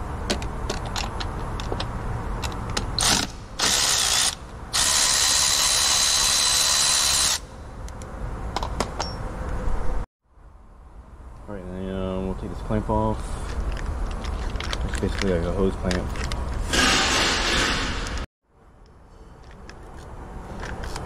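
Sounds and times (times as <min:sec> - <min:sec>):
electric ratchet whining: 0:03.0 - 0:07.5.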